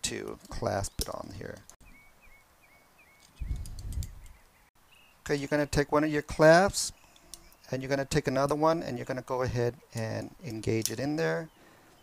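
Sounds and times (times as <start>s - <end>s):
small bird chirping: 1.8s - 5.2s, 6.9s - 7.8s.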